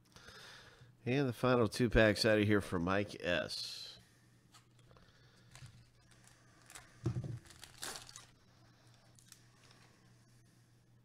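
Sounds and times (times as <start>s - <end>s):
plastic wrapper crinkling and tearing: 5.5s - 9.9s.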